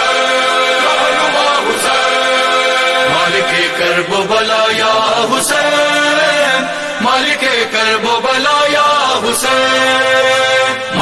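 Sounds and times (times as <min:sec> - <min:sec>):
voices chanting long notes: 0:00.0 - 0:11.0.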